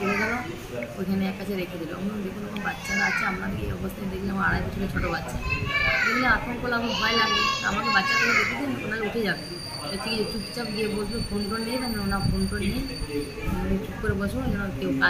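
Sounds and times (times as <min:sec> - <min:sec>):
children's voices: 0:00.0 - 0:00.6, 0:02.5 - 0:03.8, 0:04.9 - 0:08.9
woman talking: 0:01.0 - 0:05.3, 0:13.6 - 0:15.0.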